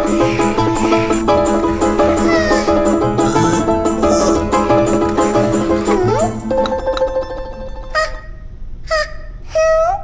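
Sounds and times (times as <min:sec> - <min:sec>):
cartoon mouse whimpering cries: 0:02.0 - 0:04.5, 0:05.9 - 0:06.4.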